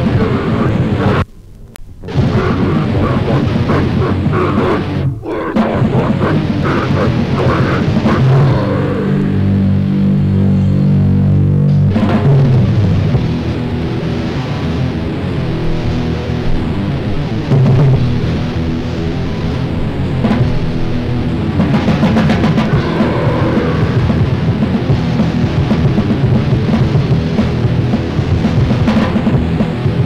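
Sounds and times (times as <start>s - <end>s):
punk band playing: 2.0s - 14.2s, 20.2s - 30.0s
distorted guitar chord ringing: 2.0s - 26.7s.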